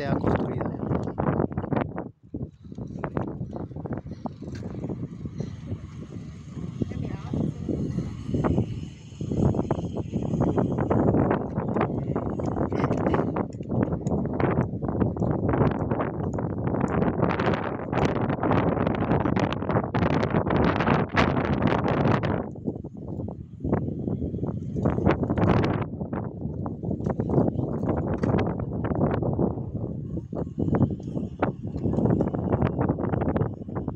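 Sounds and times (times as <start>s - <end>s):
wind buffeting microphone: 0.0s - 33.9s.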